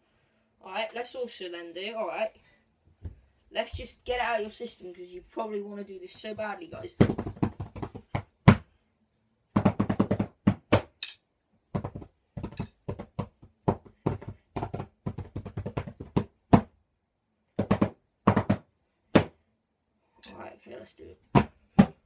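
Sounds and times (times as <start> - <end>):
drumsticks thudding on pillows: 17.6 - 19.4.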